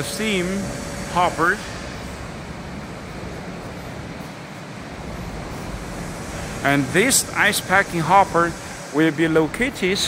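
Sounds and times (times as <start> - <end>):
even hiss: 0.0 - 4.2, 4.8 - 10.0.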